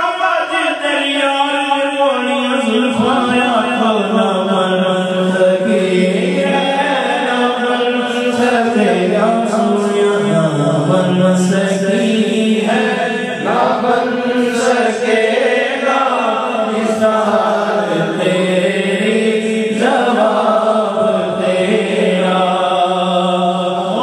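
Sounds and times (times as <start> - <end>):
man singing into a microphone: 0.0 - 24.0.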